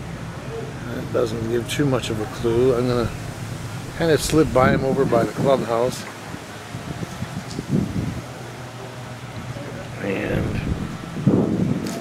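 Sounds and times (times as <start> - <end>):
wind rumbling on microphone: 2.2 - 8.2, 10.3 - 12.0.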